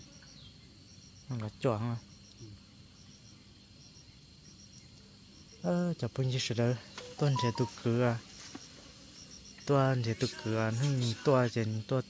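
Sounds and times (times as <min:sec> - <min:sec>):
faint high insect chirps: 0:00.0 - 0:12.0
man's voice wavering syllables: 0:07.1 - 0:07.9.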